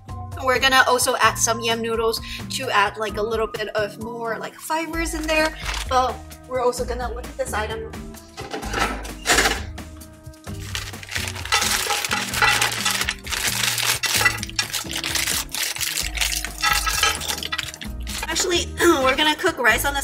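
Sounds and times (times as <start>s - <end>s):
background music with bass: 0.0s - 20.0s
frozen food clattering into pan: 5.1s - 6.0s, 8.4s - 9.7s, 10.5s - 18.5s.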